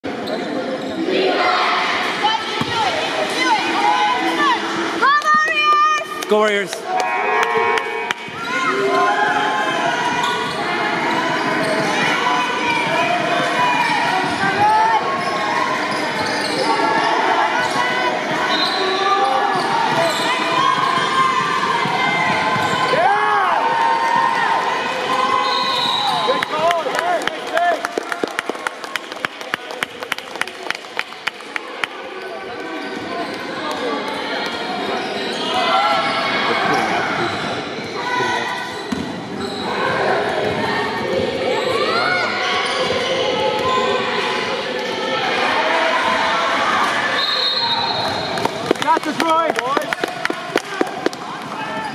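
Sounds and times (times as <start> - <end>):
sneakers squeaking: 0.1 - 1.0, 8.2 - 23.0, 32.4 - 43.9.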